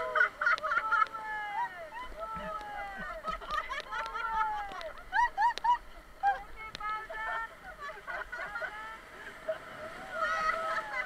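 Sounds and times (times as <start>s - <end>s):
people whooping and hollering: 0.0s - 3.2s, 9.8s - 11.0s.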